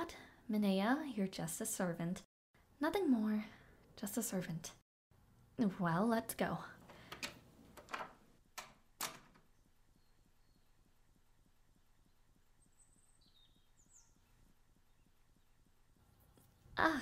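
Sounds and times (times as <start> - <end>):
faint high chirps: 9.6 - 16.9.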